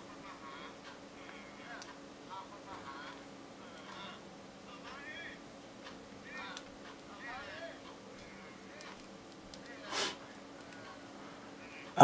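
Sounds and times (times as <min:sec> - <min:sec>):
faint hum: 0:00.0 - 0:12.0
film dialogue through phone speakers: 0:00.1 - 0:12.0.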